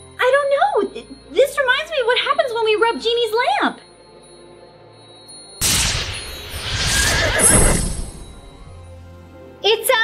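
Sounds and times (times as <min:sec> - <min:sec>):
magical whoosh: 0:05.6 - 0:09.0
horse whinnying: 0:06.6 - 0:08.2.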